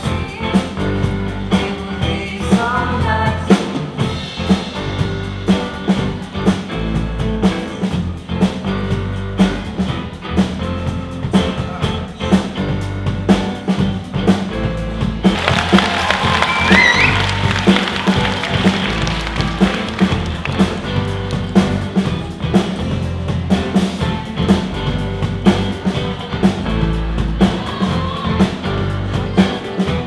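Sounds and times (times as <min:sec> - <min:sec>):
live rock band playing: 0:00.0 - 0:30.0
steady drum beat: 0:00.0 - 0:30.0.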